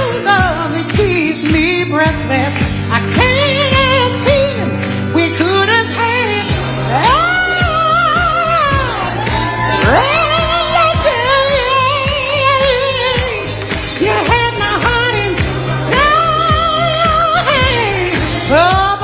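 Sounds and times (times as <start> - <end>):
band with steady bass line: 0.0 - 19.0.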